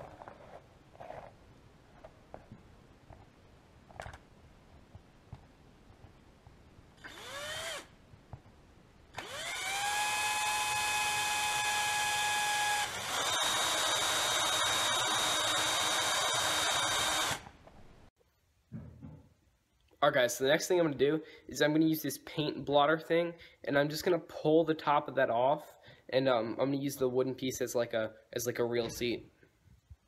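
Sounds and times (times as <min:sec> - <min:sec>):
cordless drill whining: 0:07.0 - 0:07.9, 0:09.1 - 0:17.6.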